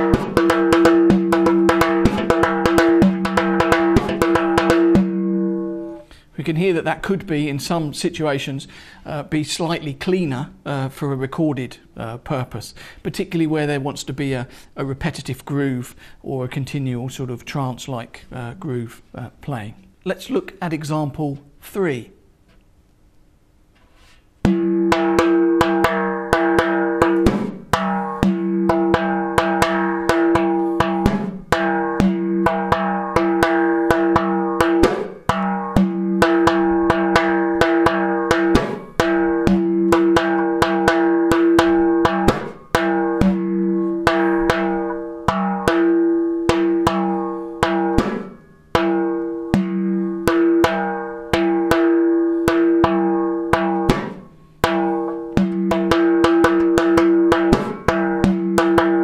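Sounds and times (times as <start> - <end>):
hand-played frame drum: 0.0 - 6.0, 24.4 - 59.0.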